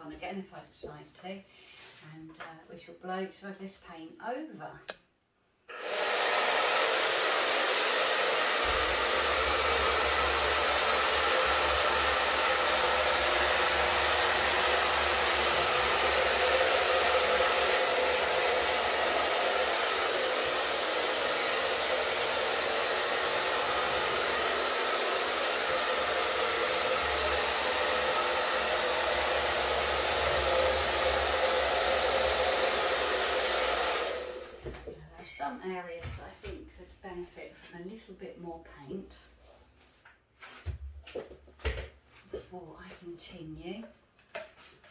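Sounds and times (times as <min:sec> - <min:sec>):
hair dryer running: 0:05.7 - 0:34.9.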